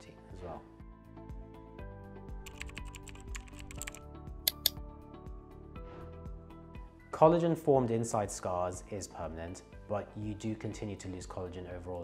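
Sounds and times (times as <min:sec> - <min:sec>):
background music: 0:00.0 - 0:12.0
keyboard key clicks: 0:02.5 - 0:04.8.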